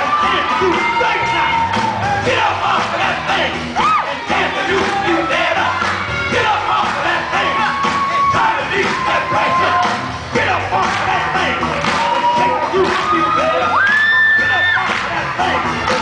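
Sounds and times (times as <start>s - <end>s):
audience whooping and cheering: 0.0s - 16.0s
dance music: 0.0s - 16.0s.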